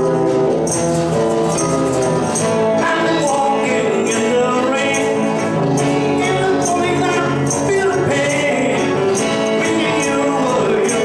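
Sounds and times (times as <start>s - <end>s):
guitars playing chords: 0.0s - 11.0s
keyboard chords: 0.0s - 11.0s
tambourine jingling: 0.0s - 11.0s.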